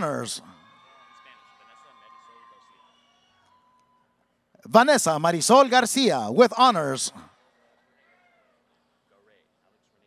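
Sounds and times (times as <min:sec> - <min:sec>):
person speaking: 0:00.0 - 0:00.4, 0:04.7 - 0:07.2.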